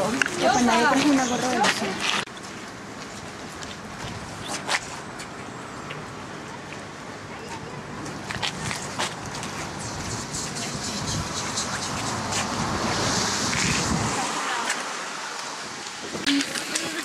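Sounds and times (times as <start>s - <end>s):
wind rushing across microphone: 8.2s - 17.0s.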